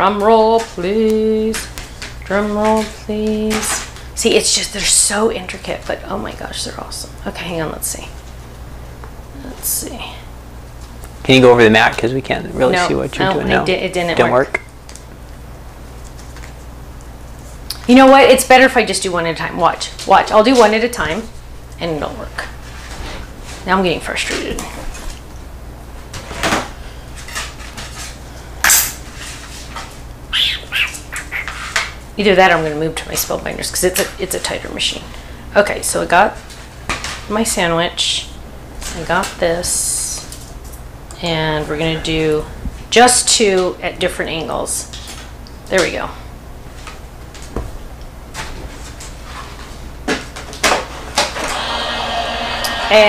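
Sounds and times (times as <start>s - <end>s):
electric machine motor running: 51.4s - 53.0s.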